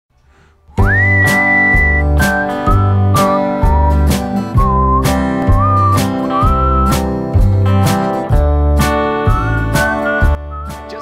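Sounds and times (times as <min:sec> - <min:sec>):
whistled melody: 0:00.7 - 0:08.1, 0:09.2 - 0:11.0
strummed acoustic guitar: 0:00.7 - 0:11.0.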